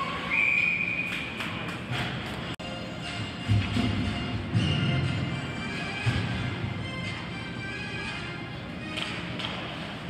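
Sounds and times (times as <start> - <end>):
referee's whistle: 0.2 - 1.3.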